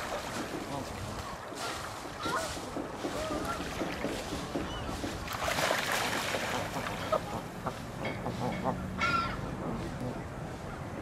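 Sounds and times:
water rushing: 0.0s - 8.0s
geese honking: 6.5s - 10.2s.

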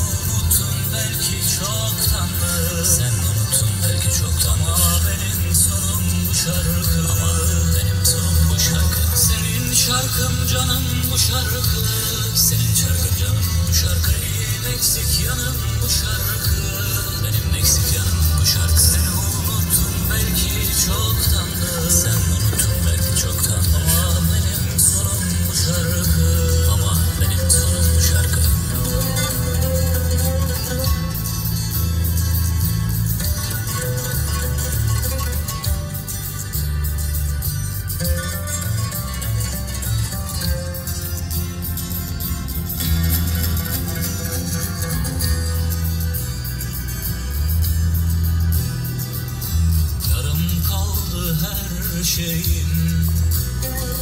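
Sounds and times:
pop music with pulsing bass: 0.0s - 54.0s
wavering lead melody: 0.0s - 54.0s.

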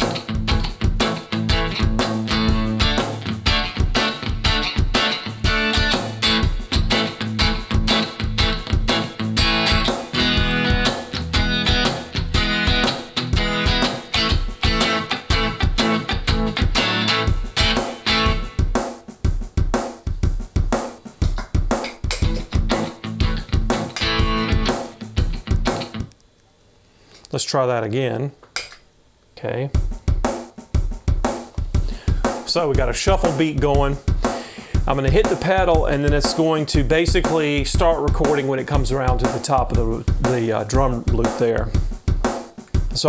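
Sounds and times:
electric guitar strumming chords: 0.0s - 18.8s, 22.0s - 26.2s
shuffle drum loop: 0.0s - 26.1s, 29.6s - 43.0s.

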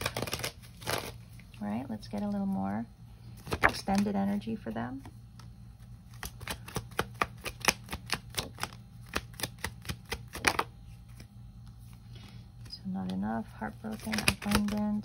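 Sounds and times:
cards being shuffled: 0.0s - 1.5s, 3.3s - 4.1s, 5.0s - 12.7s, 13.9s - 15.0s.

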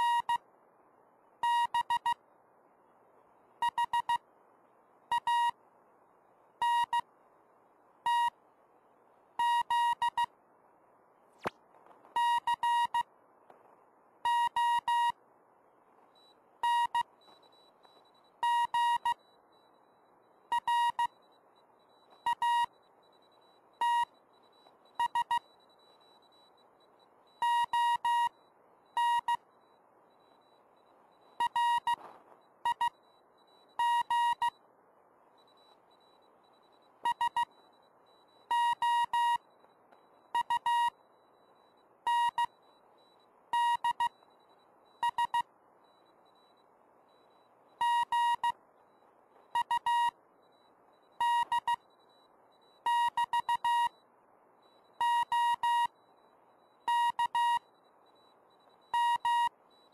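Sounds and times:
morse code beeps: 0.0s - 0.4s, 1.4s - 2.2s, 3.6s - 4.2s, 5.1s - 5.6s, 6.6s - 7.1s, 8.1s - 8.4s, 9.4s - 10.3s, 12.2s - 13.1s, 14.2s - 15.2s, 16.2s - 34.6s, 35.4s - 54.0s, 54.6s - 59.9s.

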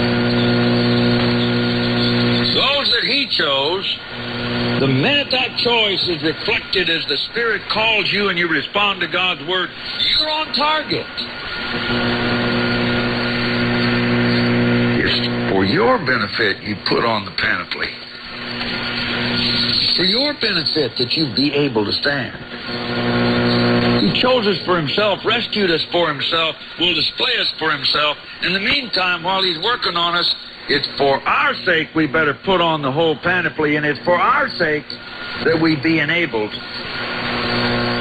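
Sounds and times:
low buzzing hum: 0.0s - 38.0s
radio broadcast speech: 0.0s - 38.0s
radio static hiss: 0.0s - 38.0s.

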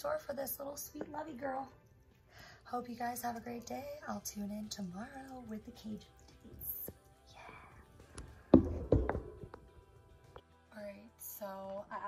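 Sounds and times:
woman whispering: 6.4s - 8.0s.

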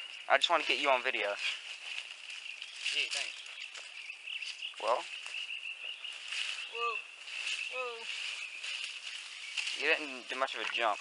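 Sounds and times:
insects droning: 0.0s - 11.0s
leaves and brush rustling: 0.0s - 11.0s.

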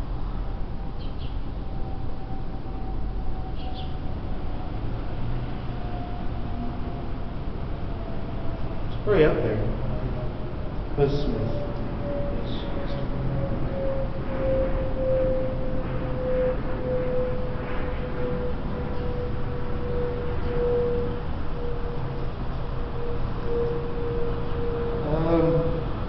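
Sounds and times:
constant low rumble: 0.0s - 26.0s
steady humming tone: 0.0s - 26.0s.

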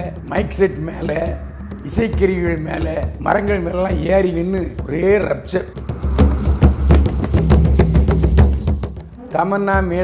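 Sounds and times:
music with fast drums and bass: 0.0s - 10.0s.

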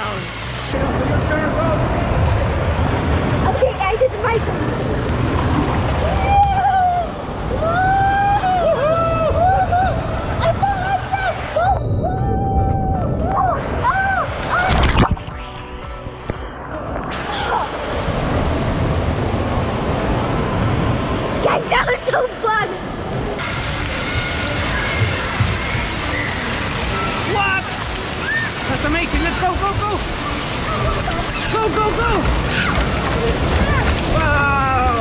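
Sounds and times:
water splashing and running: 0.0s - 35.0s.

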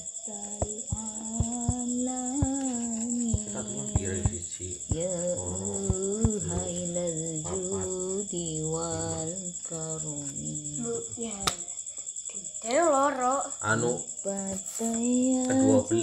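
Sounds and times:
crickets chirping: 0.0s - 16.0s
person's voice: 0.3s - 11.5s, 12.7s - 16.0s.

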